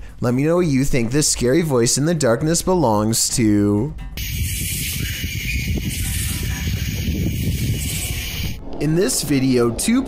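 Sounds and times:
uneven low rumble: 0:04.0 - 0:09.6.

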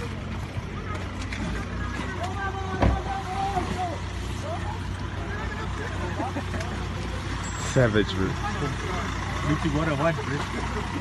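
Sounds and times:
vehicle engine idling: 0:00.0 - 0:11.0
voices talking: 0:00.0 - 0:11.0.

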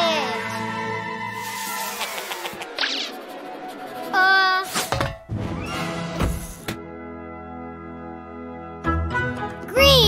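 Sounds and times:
cartoon swish: 0:01.5 - 0:03.4.

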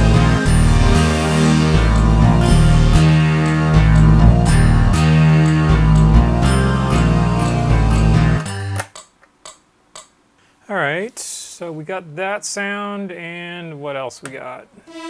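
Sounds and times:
synthesizer bass line and chords: 0:00.0 - 0:08.4.

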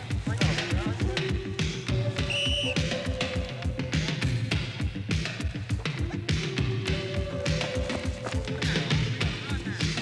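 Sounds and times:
upbeat music with fast drum beat: 0:00.0 - 0:10.0
short high whistle blast: 0:02.2 - 0:02.9.

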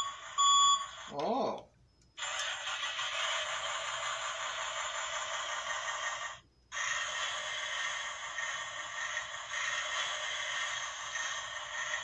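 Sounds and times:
toy speaker hiss: 0:02.2 - 0:12.0.

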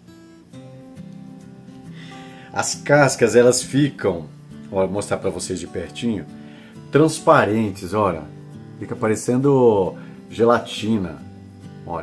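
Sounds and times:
plucked guitar music: 0:00.0 - 0:12.0.

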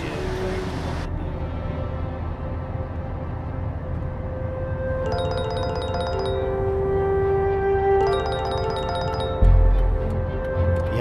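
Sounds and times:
sustained musical tones: 0:01.2 - 0:11.0
phone ringtone chiming: 0:05.1 - 0:07.0, 0:08.0 - 0:10.0.

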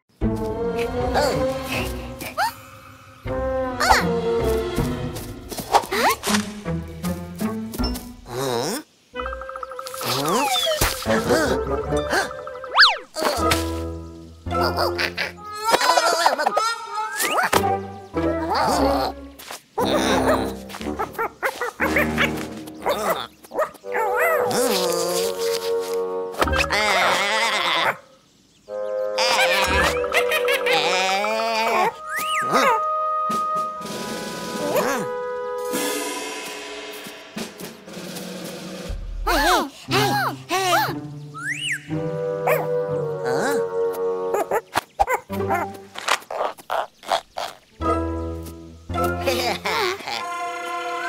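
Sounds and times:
cartoon background music: 0:00.1 - 0:02.6, 0:03.2 - 0:08.6, 0:09.2 - 0:27.4, 0:28.7 - 0:46.1, 0:47.4 - 0:51.0
cartoon music: 0:03.3 - 0:04.4, 0:09.2 - 0:13.6, 0:14.5 - 0:19.2, 0:28.8 - 0:36.9, 0:47.8 - 0:51.0
cartoon monkey calls: 0:08.3 - 0:13.5, 0:14.5 - 0:17.6, 0:26.4 - 0:28.1, 0:29.1 - 0:33.0.

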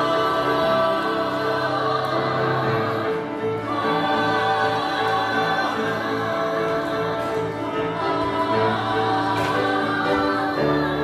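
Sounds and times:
cast singing in chorus: 0:00.0 - 0:11.0.

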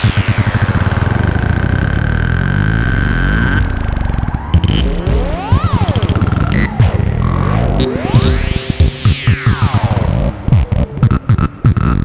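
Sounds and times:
fast low synth pulsing: 0:00.0 - 0:12.0
high synth tone sweeping down: 0:00.0 - 0:12.0.

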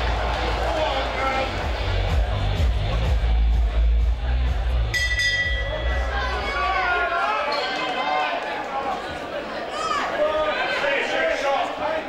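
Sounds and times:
bass-heavy music over speakers: 0:00.0 - 0:07.0
bell struck: 0:04.9 - 0:06.7.

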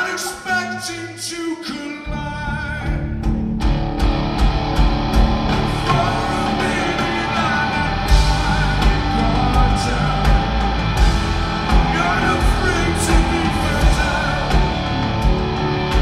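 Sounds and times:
bass guitar: 0:02.1 - 0:16.0
electric guitar: 0:02.2 - 0:16.0
drum kit beat: 0:03.0 - 0:16.0.

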